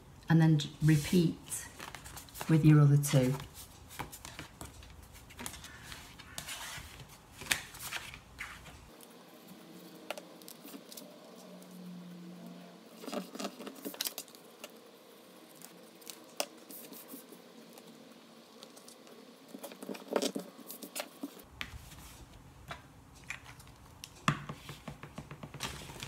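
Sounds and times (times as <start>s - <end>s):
paper rustling and sliding: 0.8s - 9.0s, 25.5s - 26.0s.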